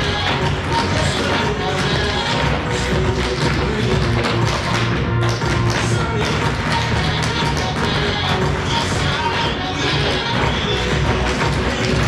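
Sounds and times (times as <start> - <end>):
recorded music with bass line: 0.0 - 12.0
tap shoes on wooden stage: 0.0 - 12.0.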